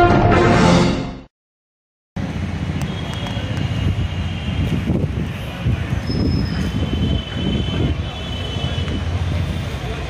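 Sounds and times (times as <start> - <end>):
low rumble of traffic: 2.2 - 10.0.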